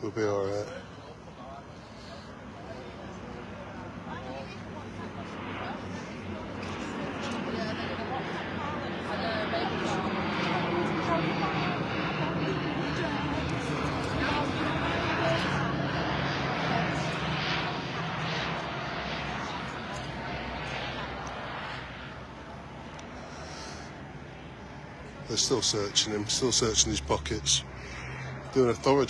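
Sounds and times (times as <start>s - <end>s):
engine drone: 1.0s - 29.0s.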